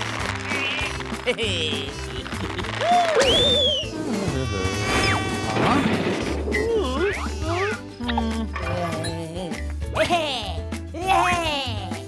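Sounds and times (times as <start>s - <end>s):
cartoon sound effects: 1.6s - 7.8s
whistle-like sliding glides: 3.2s - 4.0s.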